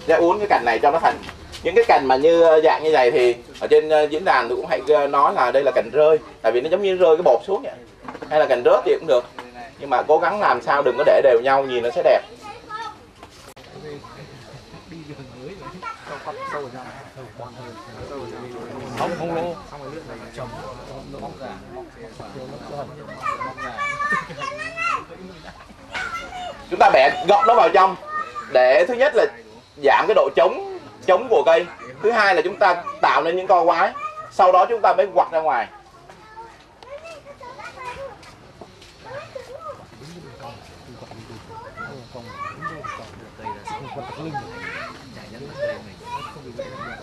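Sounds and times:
indistinct voices talking: 0.0 - 47.0
murmured chatter: 0.0 - 47.0.

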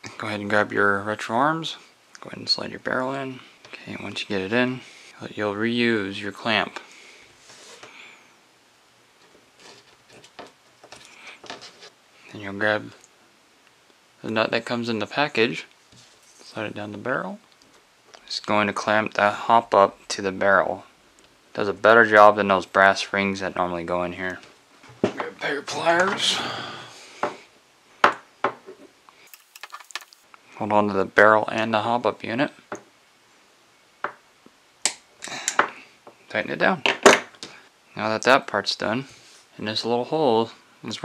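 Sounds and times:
small metal parts clicking: 29.3 - 30.3.

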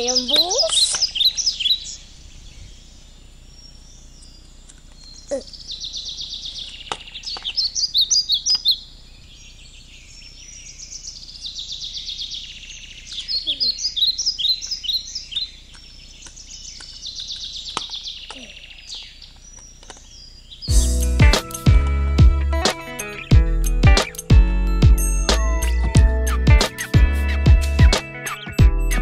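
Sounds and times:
bird chirping and trilling: 0.0 - 21.7, 22.8 - 23.3, 25.2 - 29.0
guitar music: 20.7 - 29.0.

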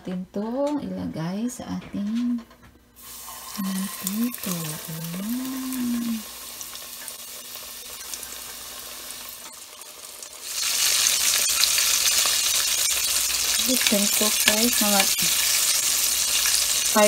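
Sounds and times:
chicken sizzling in hot oil: 3.0 - 17.0.

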